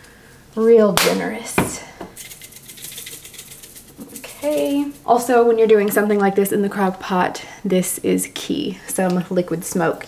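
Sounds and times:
spice shaker rattling: 2.1s - 5.2s.

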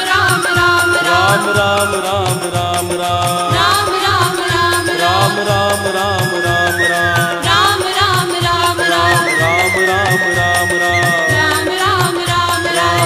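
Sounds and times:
devotional melody with sliding notes: 0.0s - 13.0s
steady drum beat: 0.0s - 13.0s.

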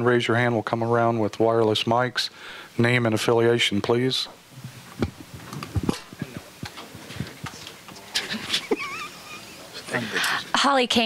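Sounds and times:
microphone handling clicks and rustles: 4.5s - 8.4s.

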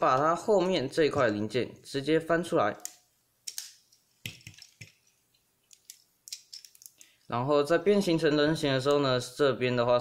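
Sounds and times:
plastic toy parts clicking: 5.7s - 7.1s.

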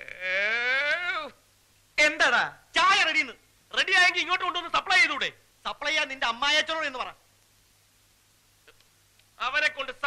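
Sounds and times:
man wailing: 0.0s - 1.4s.

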